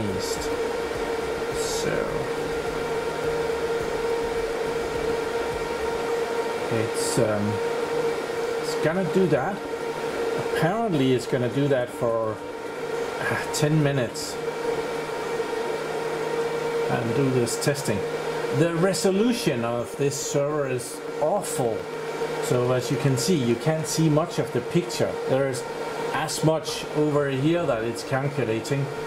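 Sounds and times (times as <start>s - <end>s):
server cooling fans whirring: 0.0s - 29.0s.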